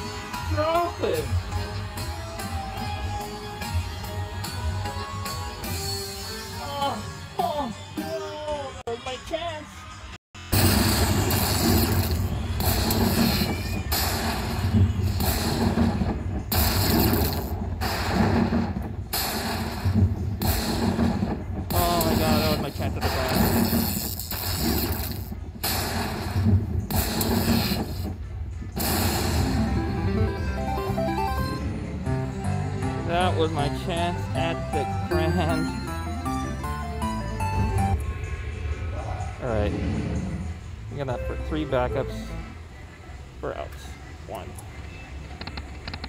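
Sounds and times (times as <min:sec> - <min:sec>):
slot machine win music: 0:29.1 - 0:38.1, 0:41.0 - 0:42.6.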